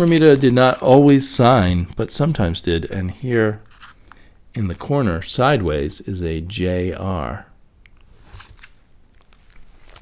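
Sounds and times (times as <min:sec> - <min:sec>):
plastic bag crinkling: 0:08.2 - 0:10.0.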